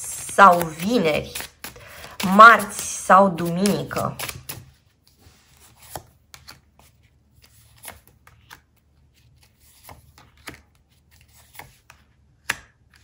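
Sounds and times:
cards snapping and tapping: 0.2s - 4.8s, 9.8s - 10.8s, 11.4s - 13.0s.

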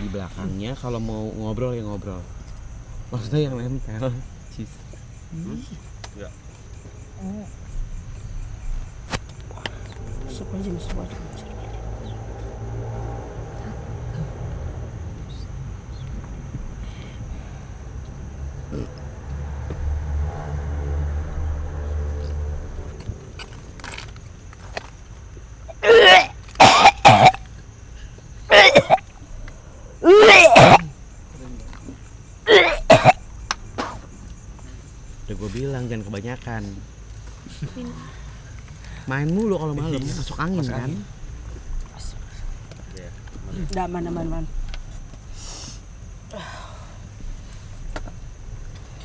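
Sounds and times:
crickets chirping: 0.0s - 49.0s
person coughing: 25.8s - 27.4s, 28.5s - 29.0s, 30.0s - 30.9s, 32.5s - 33.2s.

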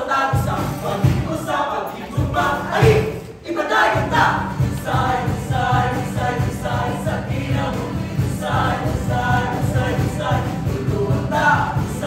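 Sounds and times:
voices singing in chorus: 0.0s - 12.0s.

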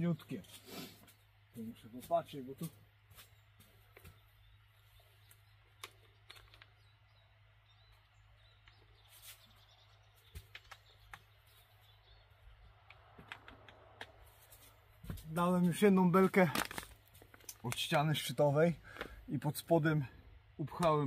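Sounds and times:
soft clicks and rustles: 8.6s - 11.9s.

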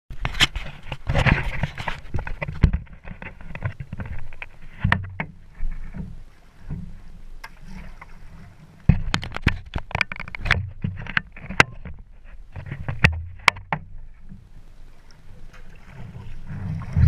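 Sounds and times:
paddle splashing in water: 0.2s - 17.0s
knocks on plastic hull: 12.9s - 13.9s
steady low rumble: 16.1s - 17.0s.

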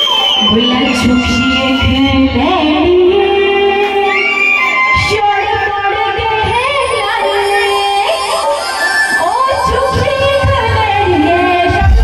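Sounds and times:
woman singing: 0.4s - 12.0s.

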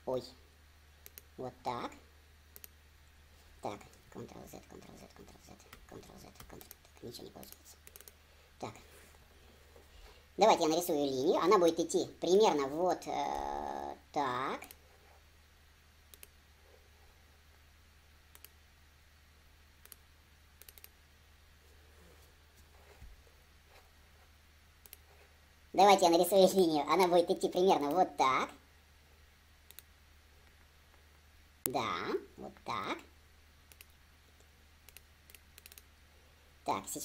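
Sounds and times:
steady low hum: 0.0s - 37.0s
computer mouse clicks: 1.0s - 1.3s, 2.5s - 2.8s, 5.6s - 8.2s, 16.1s - 16.4s, 18.3s - 18.6s, 19.8s - 20.0s, 20.6s - 21.0s, 24.8s - 25.1s, 29.6s - 29.9s, 33.7s - 35.9s.

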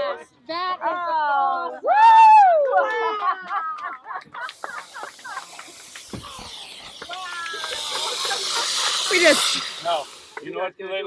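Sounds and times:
balloon burner hissing: 4.4s - 10.5s.

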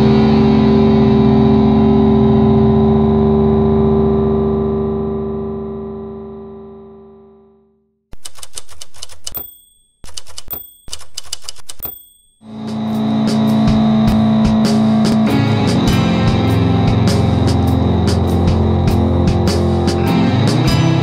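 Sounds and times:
typewriter keys clacking: 8.2s - 12.4s
typewriter bell ding: 8.2s - 12.5s
music with low sustained note: 12.5s - 21.0s.

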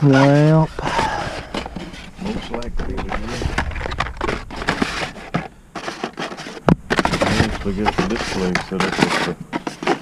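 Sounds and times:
toy cars clicking and rustling: 5.8s - 10.0s.

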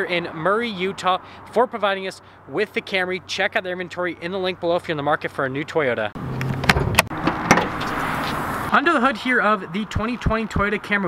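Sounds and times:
car hood latch clicks and clunks: 6.4s - 8.0s.

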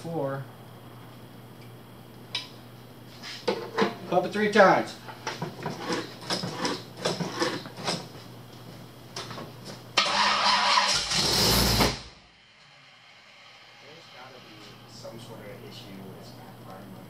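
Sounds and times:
engine cranking and starting: 10.0s - 12.1s.

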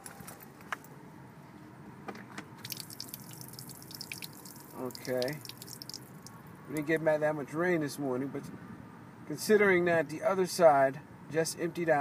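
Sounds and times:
water splattering onto floor: 2.6s - 6.3s.

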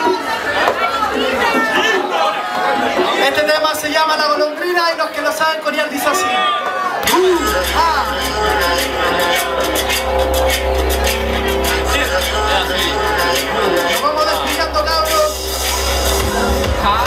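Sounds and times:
voices from stage or crowd: 0.0s - 17.0s
hip-hop music through pa: 7.0s - 17.0s.

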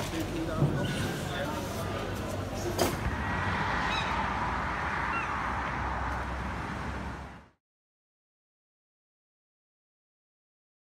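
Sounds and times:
urban background hum: 0.0s - 7.6s
gulls calling: 3.3s - 5.7s.

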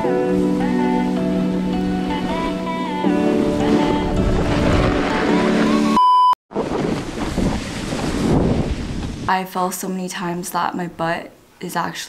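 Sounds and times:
wind buffeting microphone: 3.5s - 5.4s, 6.5s - 9.4s
high test-tone beep: 6.0s - 6.4s.

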